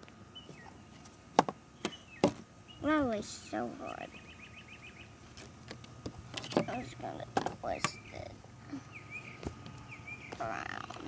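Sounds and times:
faint background hum: 0:00.0 - 0:11.0
bird chirping trill: 0:00.3 - 0:00.9, 0:01.7 - 0:03.0, 0:03.8 - 0:05.2, 0:06.4 - 0:11.0.

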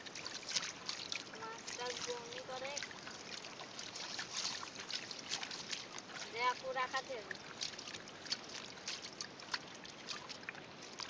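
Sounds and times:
pond water splashing and dripping: 0:00.0 - 0:11.0.

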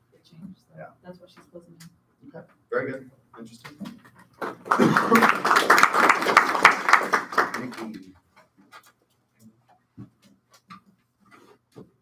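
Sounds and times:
people applauding: 0:04.4 - 0:08.1.

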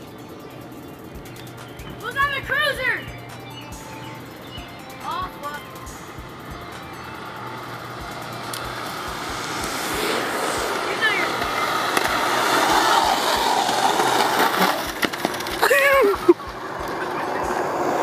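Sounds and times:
skateboard wheels rolling on asphalt: 0:00.0 - 0:18.0
person shouting: 0:15.6 - 0:16.2.

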